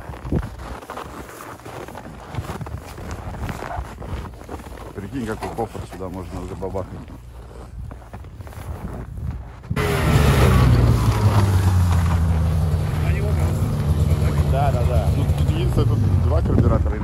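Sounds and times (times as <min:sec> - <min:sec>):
snowmobile engine droning: 0:09.8 - 0:17.0.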